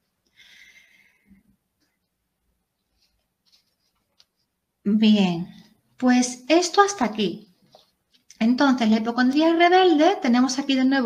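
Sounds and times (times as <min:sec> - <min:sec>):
paper rustling: 0:02.0 - 0:04.6
woman speaking: 0:04.9 - 0:07.6, 0:08.3 - 0:11.0.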